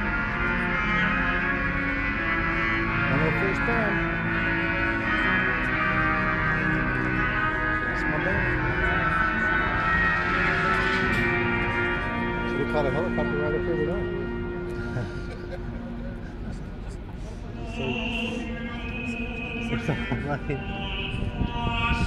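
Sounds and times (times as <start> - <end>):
music with voice over loudspeakers: 0.0 - 22.0.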